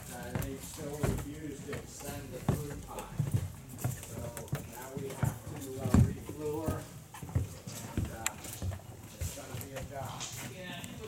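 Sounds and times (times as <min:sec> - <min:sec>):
footsteps on gravel: 0:00.0 - 0:10.8.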